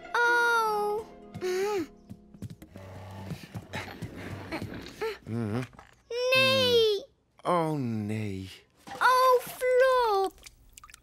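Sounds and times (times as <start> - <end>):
quiet background music: 0.0 - 4.8.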